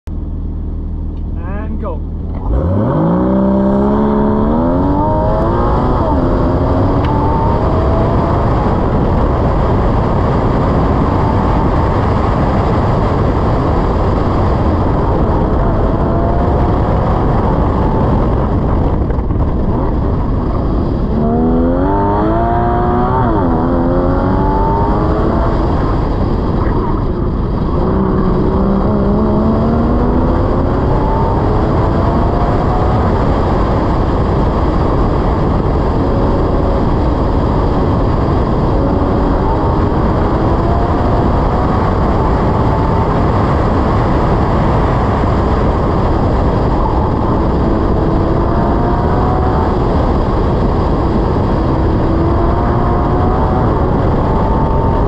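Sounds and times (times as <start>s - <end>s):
wind and tyre noise: 0.0s - 55.0s
car engine accelerating hard: 0.5s - 55.0s.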